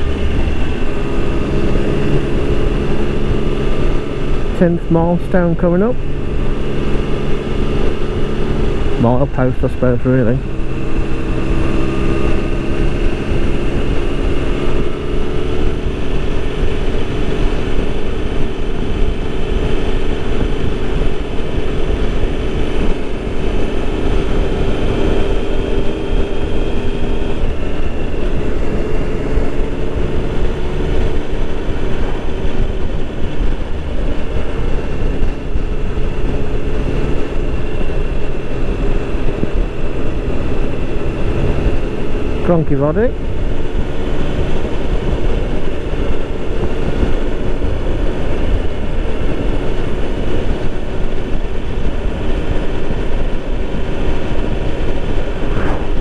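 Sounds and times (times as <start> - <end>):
motorcycle engine cruising: 0.0 - 56.0
wind rumble on microphone: 0.0 - 56.0.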